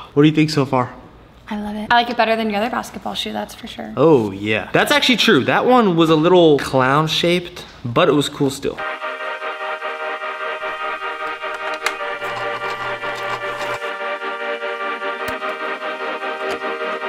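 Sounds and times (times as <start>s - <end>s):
keyboard chords: 8.8s - 17.0s.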